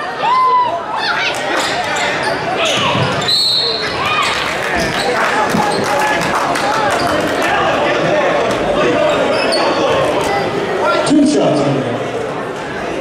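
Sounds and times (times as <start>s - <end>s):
voices from stands: 0.0s - 13.0s
sneakers squeaking: 1.4s - 6.3s, 8.5s - 10.7s
referee's whistle: 2.7s - 4.0s.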